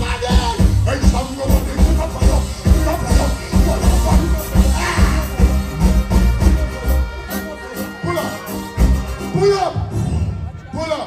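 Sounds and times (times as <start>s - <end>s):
live reggae band playing: 0.0s - 11.0s.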